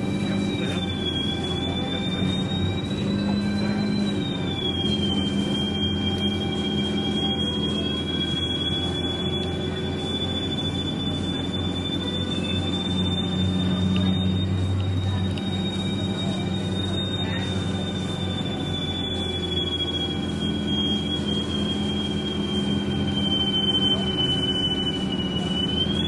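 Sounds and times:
bus drivetrain drone: 0:00.0 - 0:26.0
high-pitched whine: 0:00.0 - 0:26.0.

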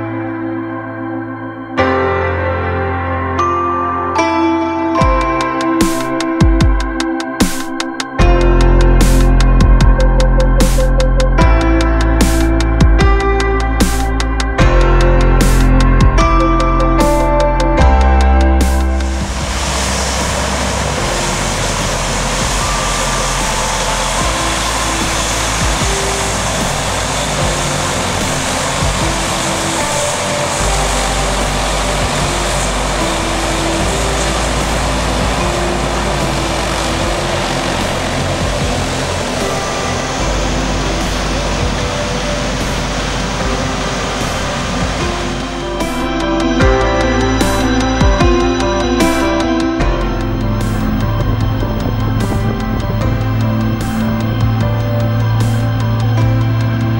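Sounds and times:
propeller aircraft engines running: 0:08.2 - 0:56.9.

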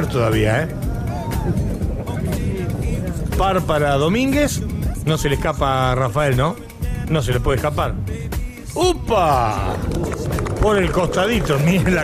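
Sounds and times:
background music: 0:00.0 - 0:12.0
low rumble: 0:00.6 - 0:05.0, 0:09.4 - 0:12.0.

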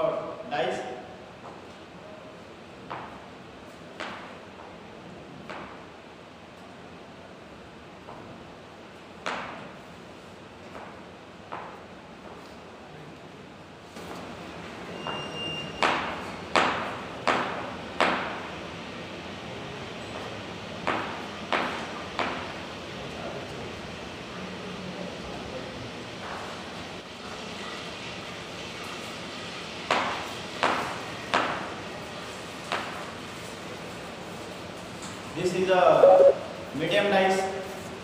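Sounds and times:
background noise: 0:35.4 - 0:38.0.

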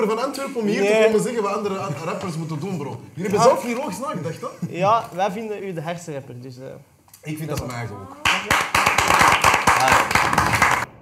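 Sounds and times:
people clapping: 0:08.2 - 0:11.0.

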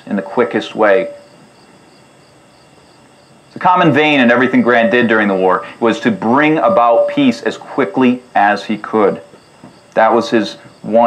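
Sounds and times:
man speaking: 0:00.0 - 0:01.2, 0:03.6 - 0:09.2, 0:10.0 - 0:11.0
insects chirping: 0:00.0 - 0:11.0.

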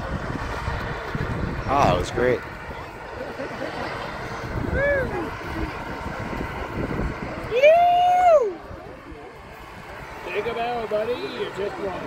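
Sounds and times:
low rumble of engines: 0:00.0 - 0:12.0
person whooping: 0:04.6 - 0:05.3, 0:07.5 - 0:08.6.

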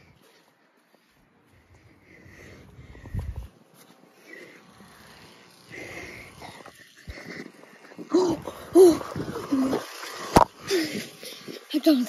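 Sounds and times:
low rumble on microphone: 0:02.3 - 0:03.5.

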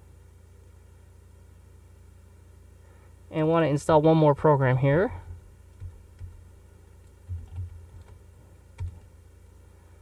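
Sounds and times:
computer keyboard keystrokes: 0:05.7 - 0:06.4, 0:07.0 - 0:08.2, 0:08.8 - 0:09.1.

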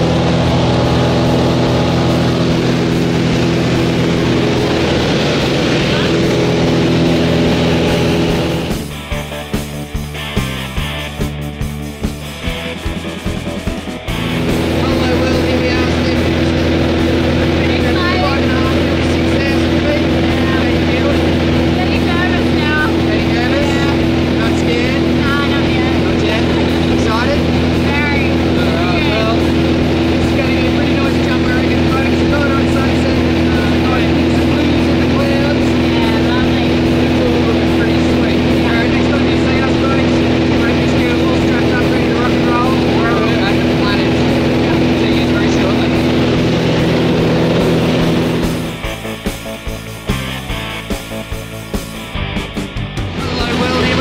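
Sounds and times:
indistinct voices: 0:00.0 - 0:08.9, 0:14.2 - 0:49.0, 0:53.0 - 0:54.0
light plane engine drone: 0:00.0 - 0:54.0.

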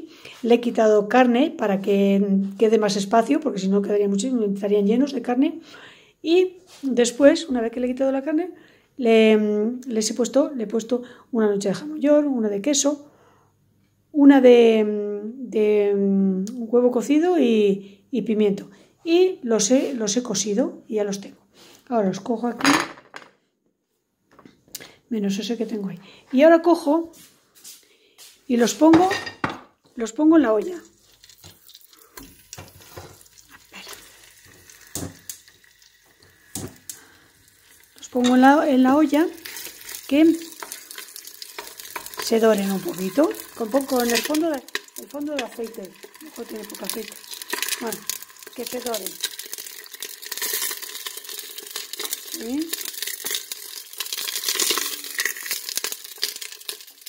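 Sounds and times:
crackles and pops: 0:30.7 - 0:57.0
oil hissing in pot: 0:30.9 - 0:57.0.

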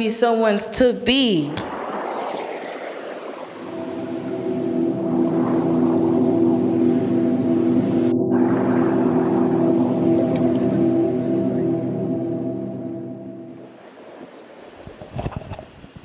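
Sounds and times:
ambient music drone: 0:02.0 - 0:14.6.

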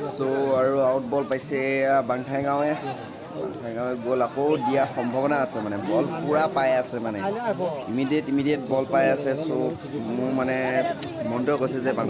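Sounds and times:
spectators talking: 0:00.0 - 0:12.0.

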